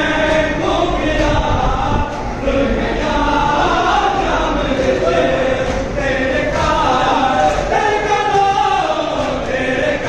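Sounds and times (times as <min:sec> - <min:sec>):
group of voices chanting: 0:00.0 - 0:10.0.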